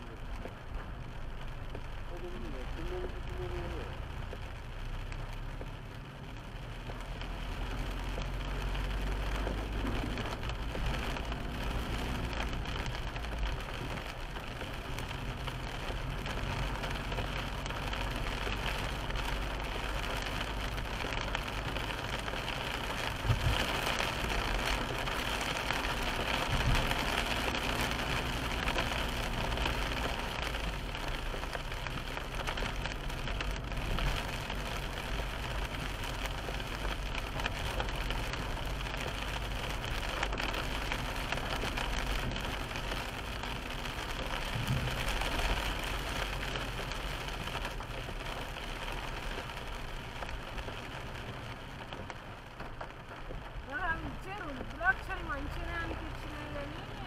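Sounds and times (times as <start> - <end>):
rain on a car: 0.0 - 57.0
tyre and road noise: 0.0 - 57.0.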